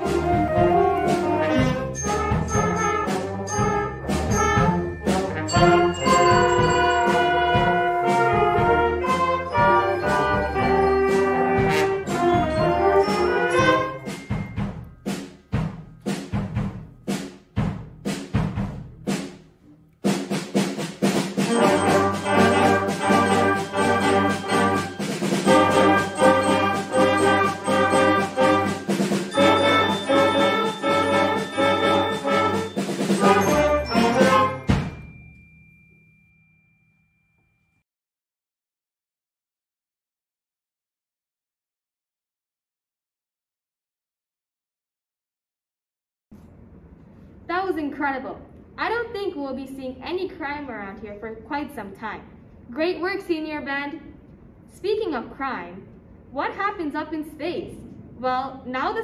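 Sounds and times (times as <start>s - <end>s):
concert band playing: 0.0s - 19.3s, 20.0s - 35.0s.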